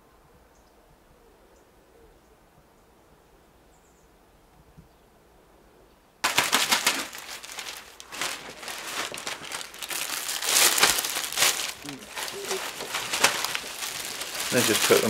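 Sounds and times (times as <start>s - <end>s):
plastic bag crinkling: 6.2s - 15.0s.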